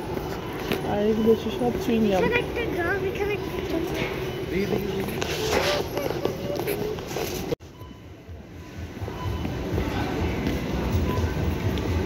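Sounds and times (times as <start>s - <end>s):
faint music: 0.0s - 12.0s.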